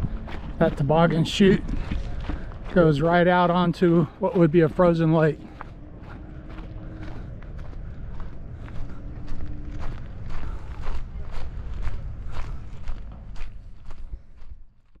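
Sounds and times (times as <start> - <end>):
footsteps walking: 0.0 - 15.0
low rumble: 0.0 - 15.0.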